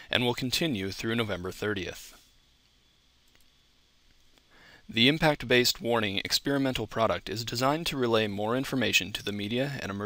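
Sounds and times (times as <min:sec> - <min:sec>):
faint clicks: 0:03.2 - 0:03.5.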